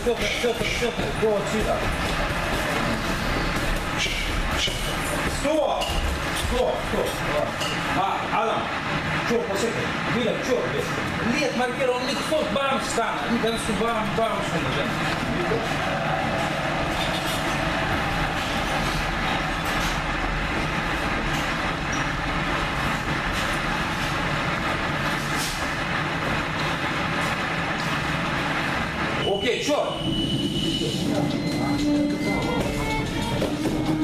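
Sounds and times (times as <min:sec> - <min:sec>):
loud dense background noise: 0:00.0 - 0:34.0.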